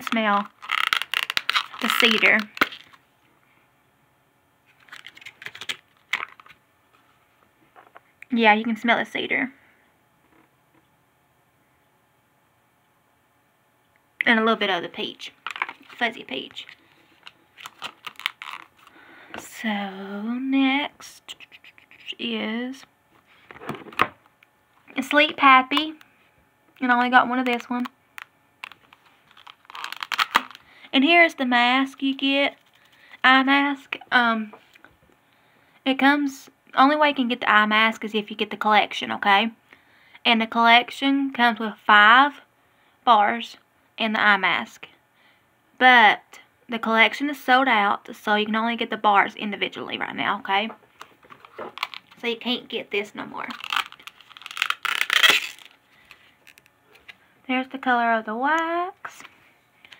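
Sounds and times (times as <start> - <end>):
plastic packaging crinkling: 0.0 - 3.0, 4.7 - 6.6, 15.4 - 19.0, 28.6 - 30.7, 51.0 - 52.2, 53.4 - 56.7.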